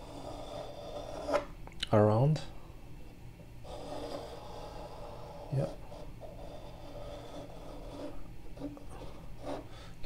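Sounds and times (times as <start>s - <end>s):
pencil scratching on paper: 0.0s - 1.5s, 3.6s - 9.8s.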